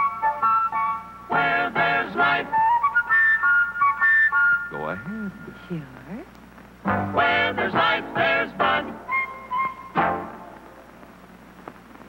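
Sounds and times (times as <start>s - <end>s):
flute melody: 0.0s - 5.6s, 6.9s - 10.6s
loud ensemble notes: 6.8s - 9.2s.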